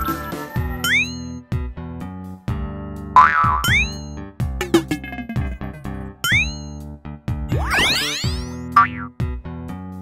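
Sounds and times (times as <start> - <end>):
cartoon background music: 0.0 - 10.0
cartoon swoop effects: 7.5 - 8.7.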